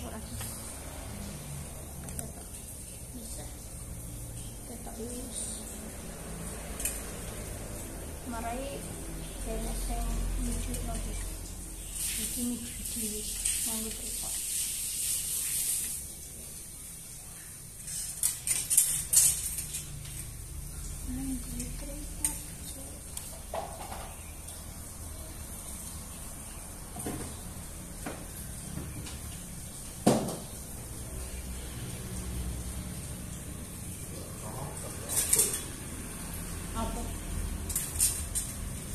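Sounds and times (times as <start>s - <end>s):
wire hangers clicking on metal rack: 17.8s - 20.4s, 35.0s - 35.7s, 37.6s - 38.9s.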